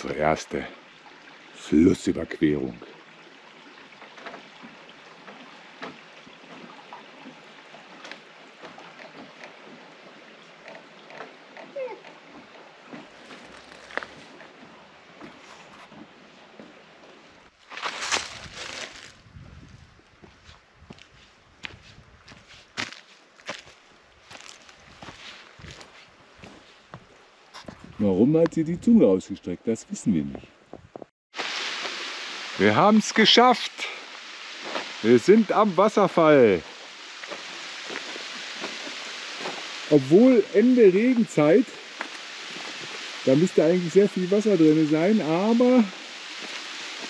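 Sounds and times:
creek trickling over rocks: 0.0 - 30.7, 31.3 - 47.0
footsteps on wooden footbridge: 3.9 - 28.5, 30.2 - 31.1, 37.2 - 39.7, 46.4 - 47.0.

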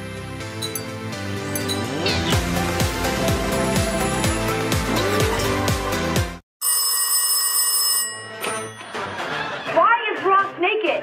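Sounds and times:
telephone ringing: 6.6 - 9.2.

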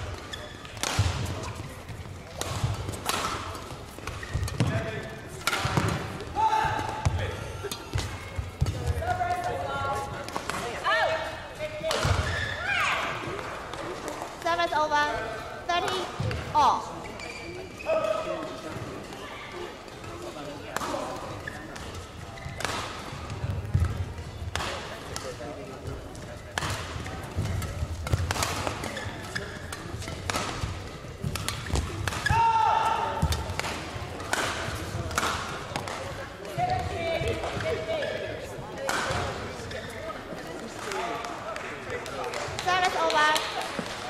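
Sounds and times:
shoe squeaks on court floor: 0.2 - 0.8, 17.0 - 18.1, 28.8 - 30.2
racket striking shuttlecock: 2.3 - 6.1, 26.6 - 36.0.

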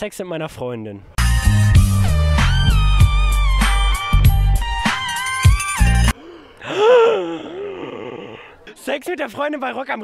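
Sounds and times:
person gasping: 6.1 - 8.7.

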